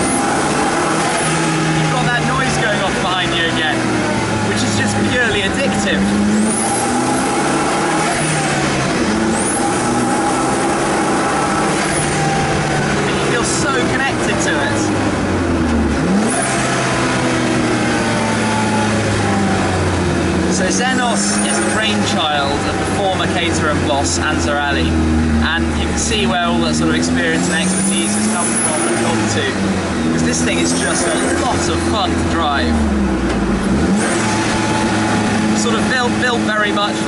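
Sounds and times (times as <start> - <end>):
car engine revving: 0.0 - 37.0.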